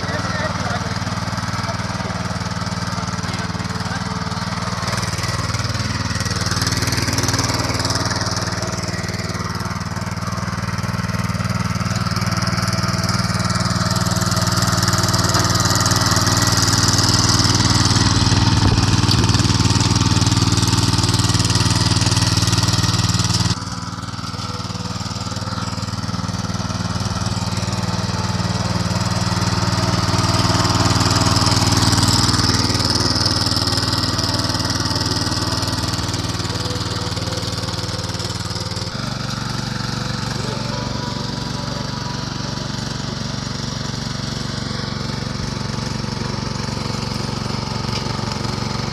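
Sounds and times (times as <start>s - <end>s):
tiller engine running: 0.0s - 48.9s.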